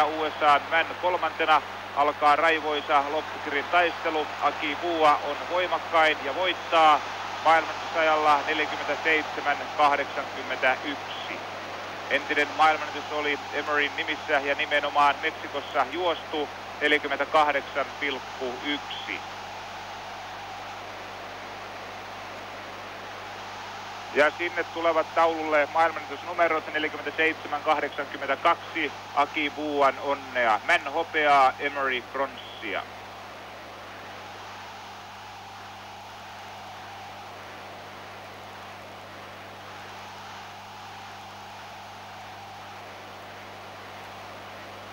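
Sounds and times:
low mains hum: 0.0 - 44.9
steady hiss: 0.0 - 44.9.

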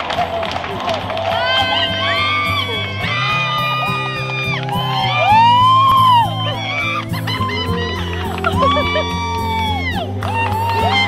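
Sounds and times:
background music: 0.0 - 11.0
people whooping and yelling: 0.0 - 11.0.

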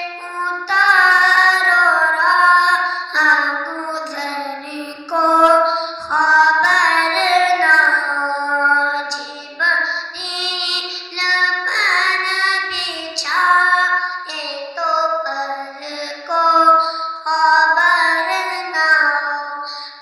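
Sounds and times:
boy singing into microphone: 0.0 - 20.0.

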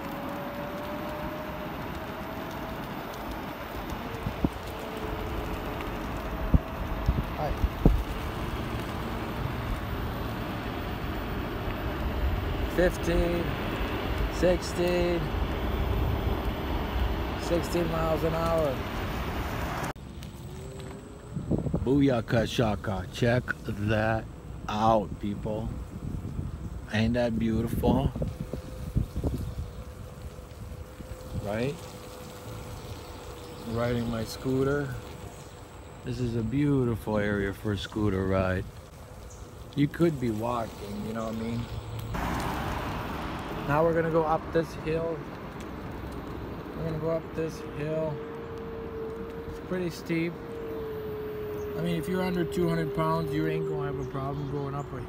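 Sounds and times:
wind noise: 0.0 - 48.1.

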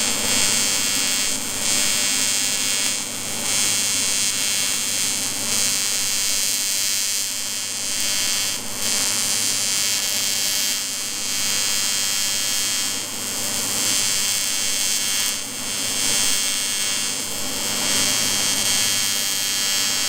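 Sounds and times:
welding arc buzzing and hissing: 0.0 - 20.0.

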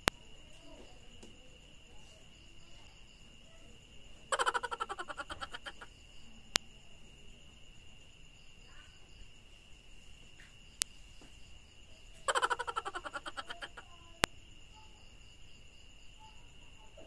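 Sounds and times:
small animal chirping: 4.3 - 5.9, 12.2 - 14.9.

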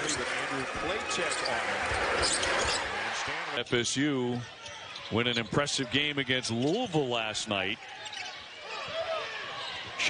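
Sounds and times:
sneakers squeaking on hardwood: 1.3 - 2.9.

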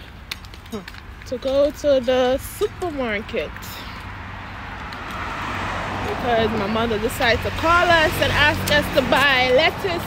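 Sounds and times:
car passing: 1.0 - 10.0.

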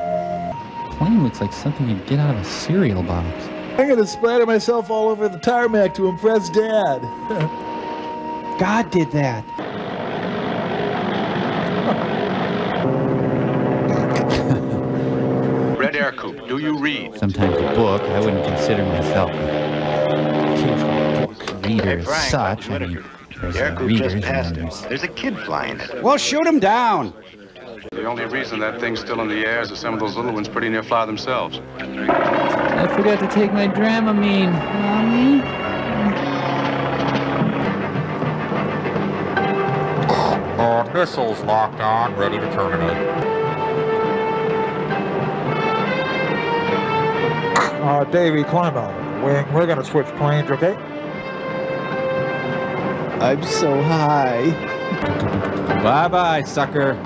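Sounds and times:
propeller plane engine drone: 0.0 - 8.6, 9.6 - 22.2, 30.9 - 40.6, 50.8 - 57.0
background music: 0.0 - 57.0
light plane propeller engine: 9.6 - 15.9, 17.4 - 22.1.

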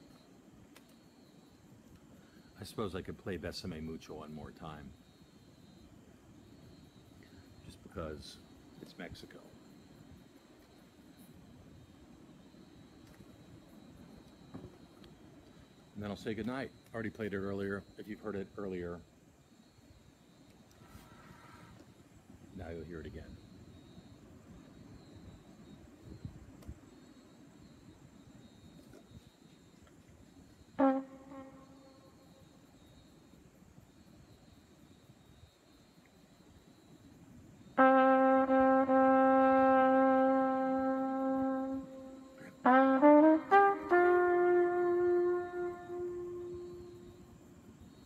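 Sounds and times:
solo trumpet playing: 30.7 - 32.3, 37.7 - 47.4.

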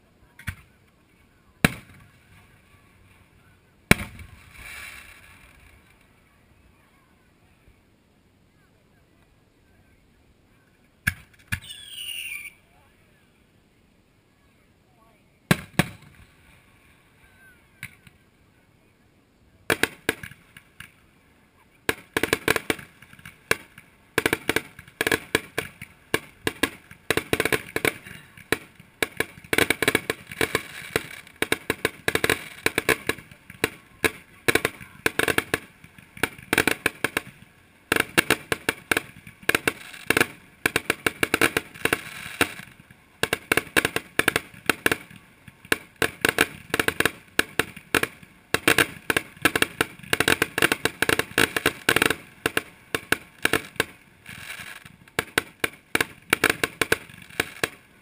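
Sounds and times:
fireworks bangs and pops: 0.3 - 0.8, 1.6 - 3.2, 3.8 - 6.1, 11.0 - 12.1, 15.5 - 16.5, 17.8 - 18.2, 19.6 - 21.0, 21.8 - 58.0.

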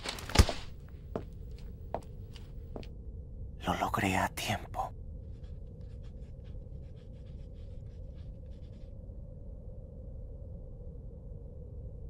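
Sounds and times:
steady low hum: 0.0 - 12.0
pen scratching on paper: 5.3 - 8.8.

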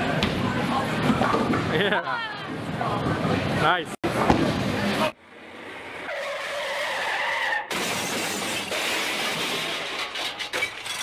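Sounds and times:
bowling hall noise: 0.0 - 6.1.

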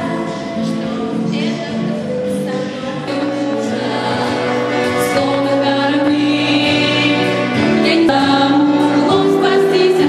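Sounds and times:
girls singing together: 0.0 - 10.0
music: 0.0 - 10.0.

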